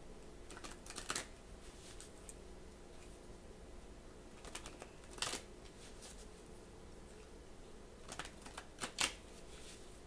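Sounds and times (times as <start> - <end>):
cards rustling: 0.5 - 1.3, 8.1 - 9.2
cards clicking: 8.1 - 9.2.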